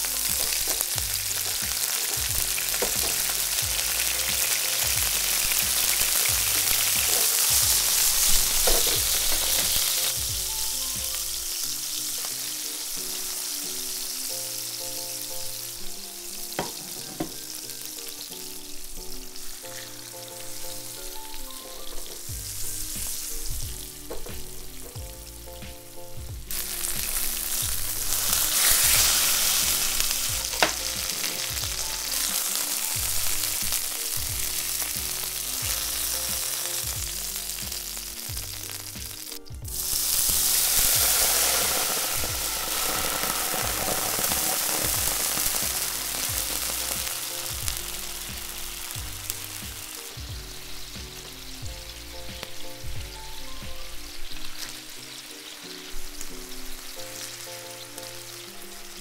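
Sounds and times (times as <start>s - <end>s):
background music with steady beat: 0.0s - 59.0s
chicken sizzling in oil: 0.0s - 59.0s.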